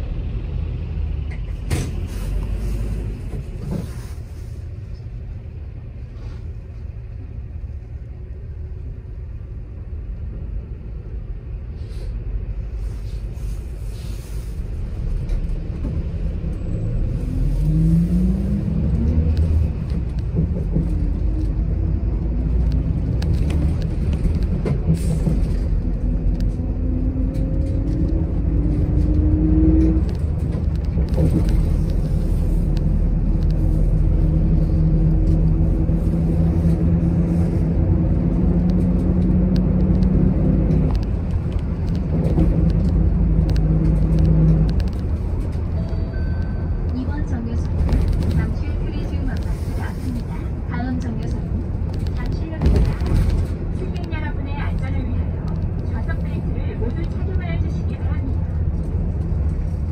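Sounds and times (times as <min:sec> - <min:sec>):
bus drivetrain drone rising: 0:00.0 - 0:59.9
bus engine and road rumble: 0:00.0 - 0:59.9.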